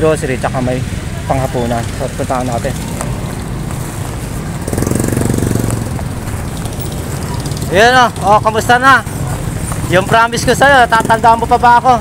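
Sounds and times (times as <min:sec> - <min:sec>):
roadside traffic rumble: 0:00.0 - 0:12.0
small motorcycle engine passing: 0:04.6 - 0:07.8.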